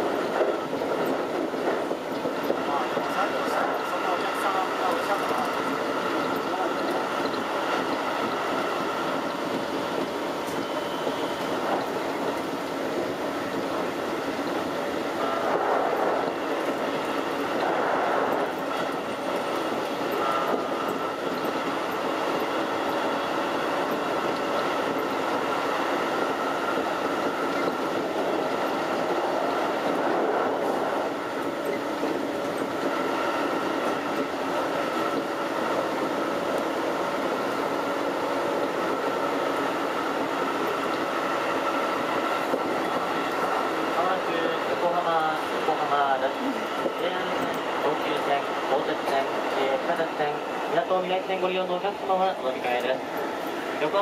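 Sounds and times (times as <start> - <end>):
steady high whine: 0.0 - 54.0
train wheels rumbling on rail: 0.0 - 54.0.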